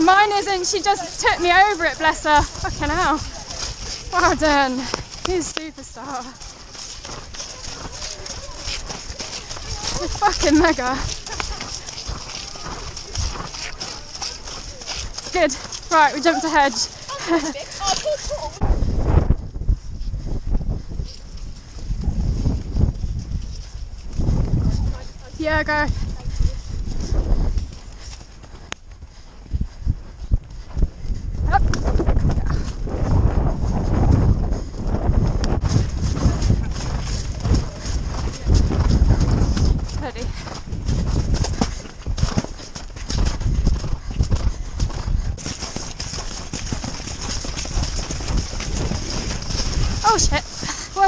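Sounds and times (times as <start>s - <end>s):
horse hooves thudding on grass: 0.0s - 51.0s.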